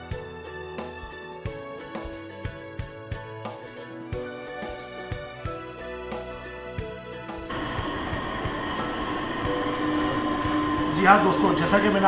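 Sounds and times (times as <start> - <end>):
background music: 0.0 - 12.0
machine hum with hiss: 7.5 - 12.0.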